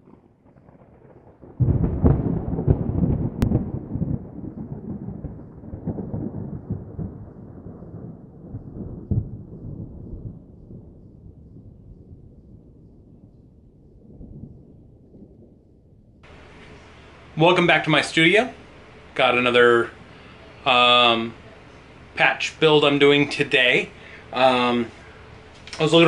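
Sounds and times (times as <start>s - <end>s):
thunder clap: 0.0s - 21.4s
thunder rumbling: 0.0s - 26.0s.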